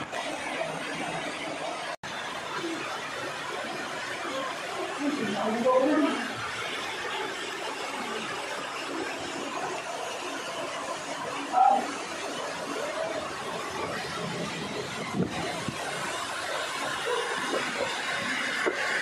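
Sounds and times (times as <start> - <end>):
waterfall rushing over rocks: 0.0 - 19.0
loud voice-like call: 11.5 - 11.9.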